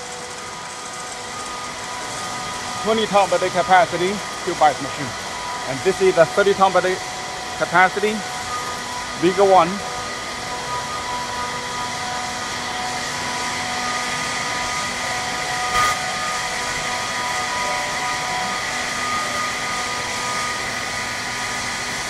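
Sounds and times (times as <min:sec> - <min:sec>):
ice-making machinery whirring: 0:00.0 - 0:22.0
steady humming tones: 0:00.0 - 0:22.0.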